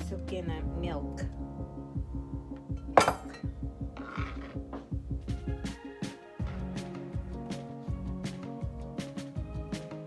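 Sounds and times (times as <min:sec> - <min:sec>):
background music with steady beat: 0:00.0 - 0:10.0
knife scraping bowl: 0:04.0 - 0:04.6.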